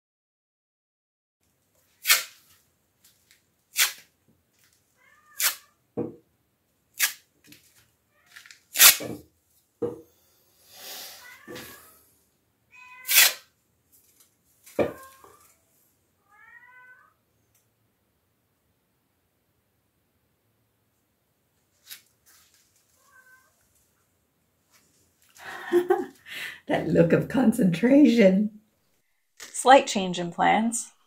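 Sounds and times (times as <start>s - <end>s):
cat meowing: 5.0s - 5.8s, 11.1s - 12.1s, 12.7s - 13.5s, 14.8s - 15.6s, 16.2s - 17.2s, 22.9s - 23.6s.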